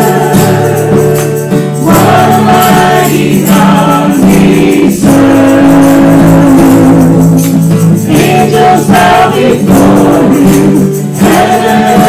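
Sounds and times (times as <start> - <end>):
group singing worship song: 0.0 - 12.0
strummed acoustic guitar: 0.0 - 12.0.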